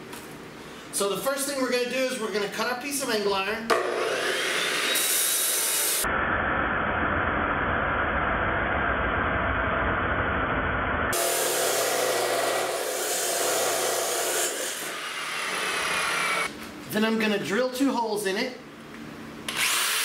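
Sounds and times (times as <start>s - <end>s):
chop saw whining: 3.7s - 6.0s, 11.1s - 16.5s, 19.5s - 20.0s
saw grinding through steel: 4.0s - 6.0s, 11.2s - 16.5s.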